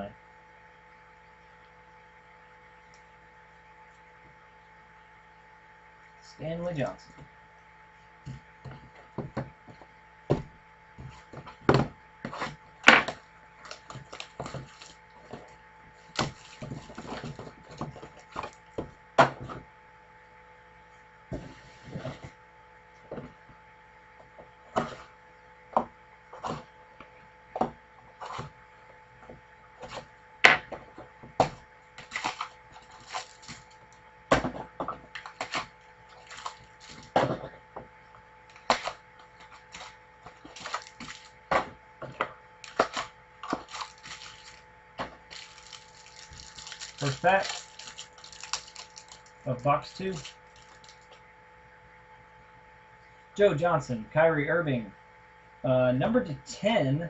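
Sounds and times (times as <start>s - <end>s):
hands handling cards and box: 34.5s - 37.5s, 38.5s - 51.2s.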